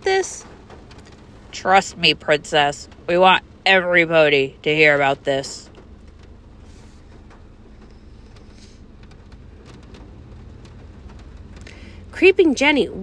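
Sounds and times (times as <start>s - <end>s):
background hiss: 0.0s - 12.3s.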